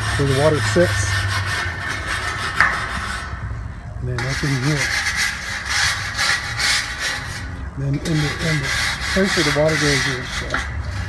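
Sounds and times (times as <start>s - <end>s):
wire brush scrubbing metal: 0.0s - 3.5s, 4.1s - 11.0s.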